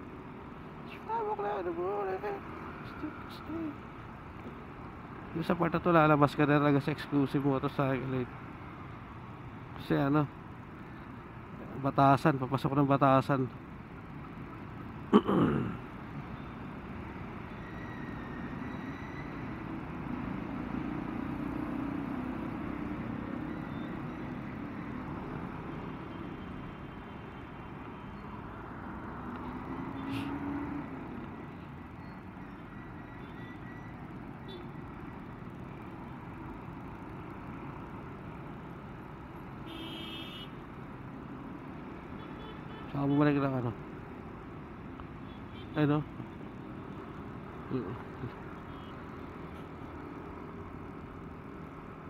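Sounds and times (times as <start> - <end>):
traffic of cars and buses: 0.0 - 52.0.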